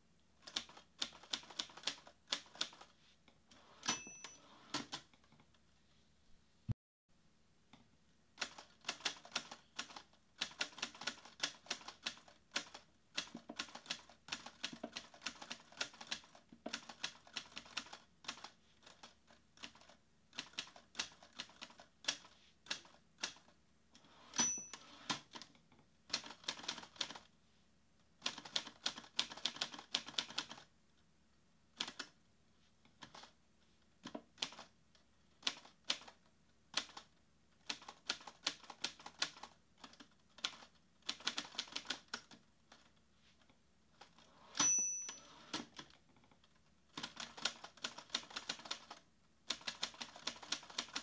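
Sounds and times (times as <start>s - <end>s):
typewriter bell ding: 3.8s - 4.6s, 24.3s - 25.1s, 44.6s - 45.5s.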